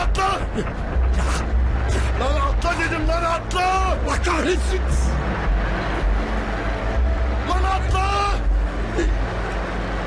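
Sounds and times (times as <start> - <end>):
man shouting: 0.0 - 0.5, 7.5 - 8.5
car engine and road rumble: 0.0 - 10.0.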